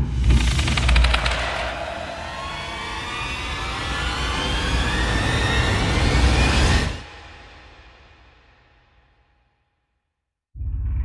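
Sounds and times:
loud rushing swell rising in pitch: 0.2s - 7.9s.

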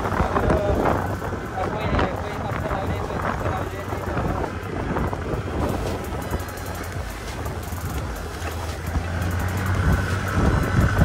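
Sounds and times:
motor scooter engine running: 0.0s - 11.0s
wind buffeting microphone: 0.0s - 11.0s.

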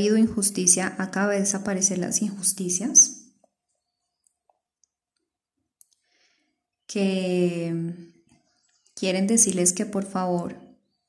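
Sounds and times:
woman speaking: 0.0s - 3.2s, 6.9s - 8.1s, 9.0s - 10.7s
faint breath: 6.0s - 6.7s.

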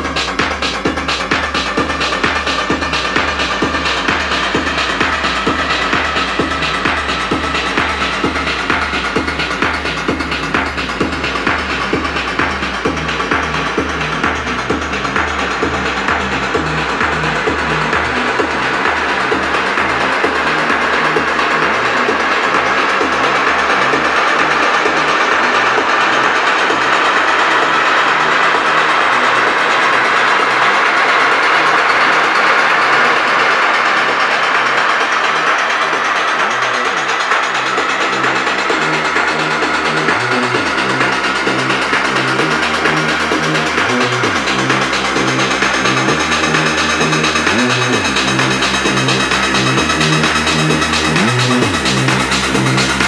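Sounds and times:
pounding kick and bassline: 0.0s - 53.0s
sustained synths: 0.0s - 53.0s
rising noise sweep: 29.6s - 53.0s.

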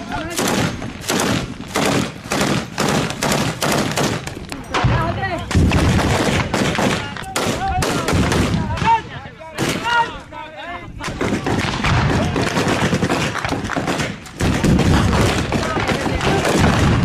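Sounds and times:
rifle gunfire: 0.0s - 4.4s, 5.5s - 8.9s, 11.2s - 17.0s.

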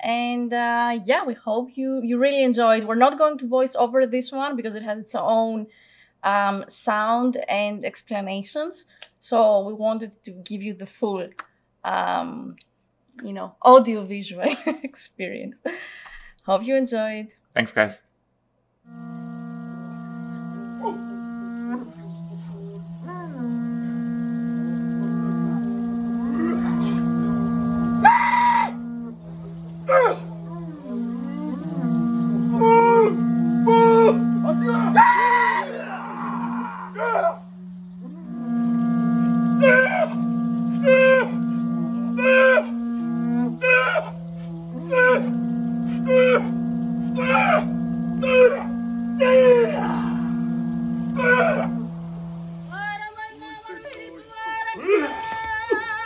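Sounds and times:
falling wavering calls: 18.9s - 56.0s
horn-like drone: 18.9s - 56.0s
men shouting cries: 31.5s - 37.4s, 43.6s - 44.2s, 44.8s - 51.9s.

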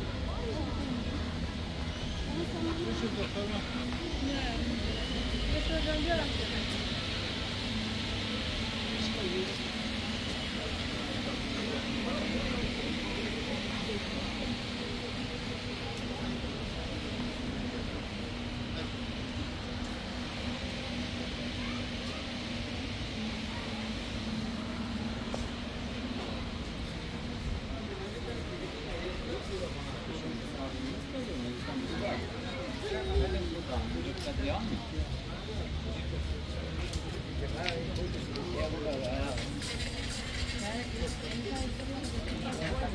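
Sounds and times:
steady low hum: 0.0s - 32.5s
indistinct voices: 0.0s - 42.9s.

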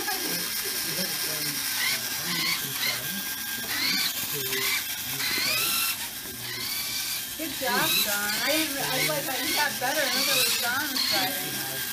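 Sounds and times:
robot motors whining: 0.0s - 11.9s.

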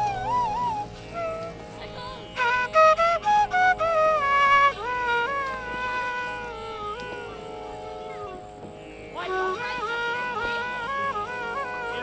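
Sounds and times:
bamboo flute playing: 0.0s - 12.0s.

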